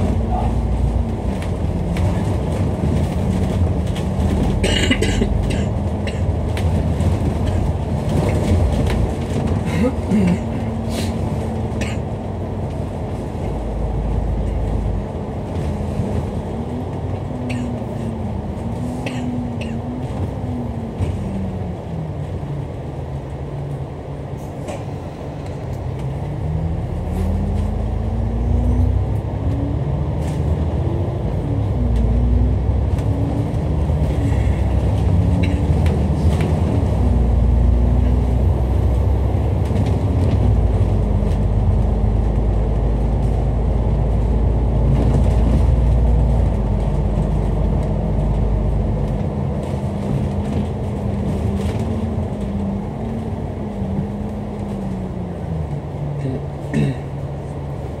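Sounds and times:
bus diesel engine accelerating: 0.0s - 58.0s.

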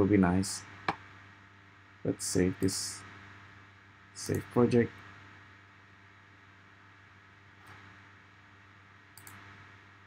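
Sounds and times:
low steady hum: 0.0s - 10.0s
faint mouse click: 9.1s - 9.5s.

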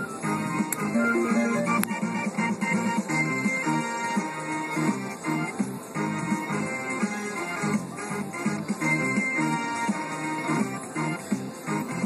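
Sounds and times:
slot machine electronic jingle: 0.9s - 2.6s
win meter counting up: 1.0s - 2.2s.

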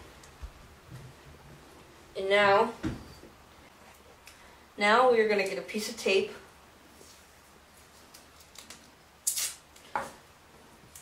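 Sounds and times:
tape ripping off roll: 8.5s - 9.6s.

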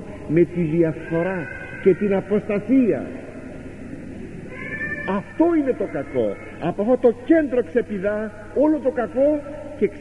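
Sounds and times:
man speaking: 0.0s - 3.4s, 5.0s - 10.0s
tape hiss and hum: 0.0s - 10.0s.

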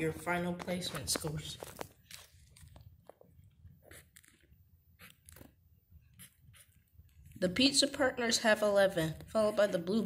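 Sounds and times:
pen scratching on paper: 3.8s - 4.4s, 5.0s - 5.4s, 6.1s - 7.4s.

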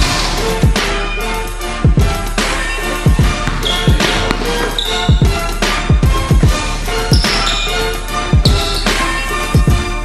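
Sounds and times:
hip-hop music with beat: 0.0s - 10.0s.

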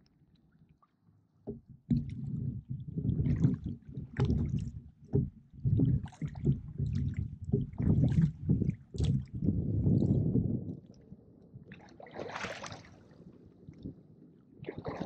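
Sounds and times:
water sloshing against hull: 0.1s - 15.0s
oar splashes: 1.5s - 10.2s, 11.7s - 13.3s, 14.6s - 15.0s.

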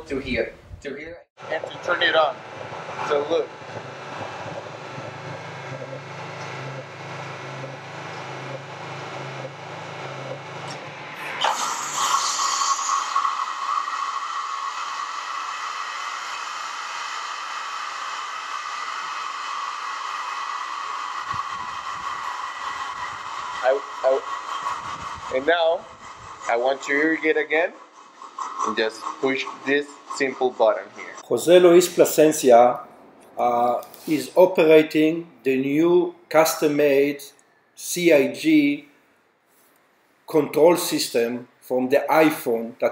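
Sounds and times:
low pulsing hum: 1.4s - 12.0s, 13.0s - 32.0s
pump motor whining: 1.4s - 32.0s.

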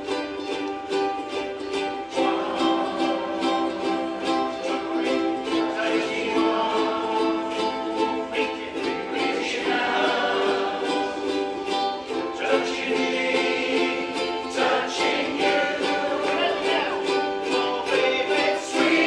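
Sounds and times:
ukuleles strumming chords: 0.0s - 19.0s
voices singing along: 1.7s - 19.0s.

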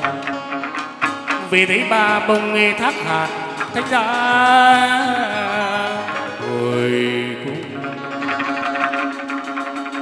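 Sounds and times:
plucked string notes: 0.0s - 10.0s.

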